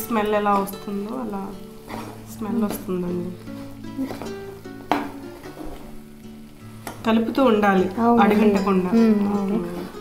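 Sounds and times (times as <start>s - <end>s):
food sizzling in a pan: 0.0s - 10.0s
metal spatula stirring: 1.7s - 5.9s.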